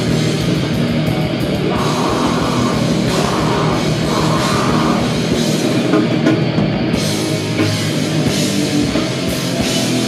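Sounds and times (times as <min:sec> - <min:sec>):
metal band playing live: 0:00.0 - 0:10.0.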